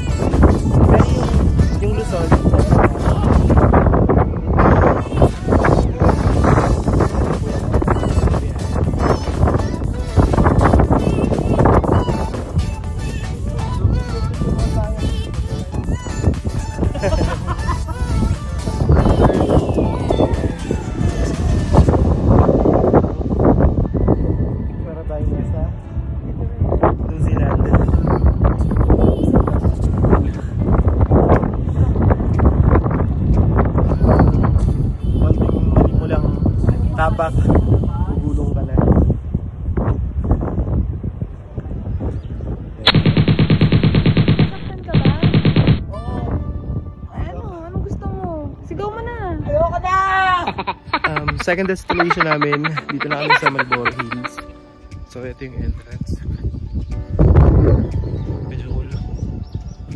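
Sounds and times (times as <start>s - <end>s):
wind buffeting microphone: 0.0s - 59.9s
rapid rattle of sharp pulses: 42.9s - 45.8s.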